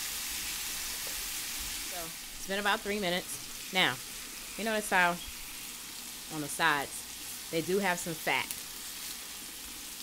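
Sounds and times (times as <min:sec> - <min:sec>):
meat sizzling in a pan: 0:00.0 - 0:10.0.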